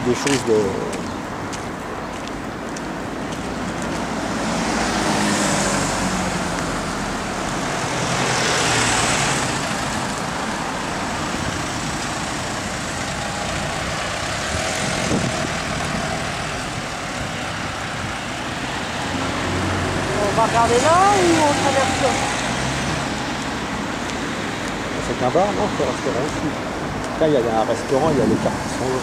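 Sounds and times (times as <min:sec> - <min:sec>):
cars driving past: 0:00.0 - 0:29.0.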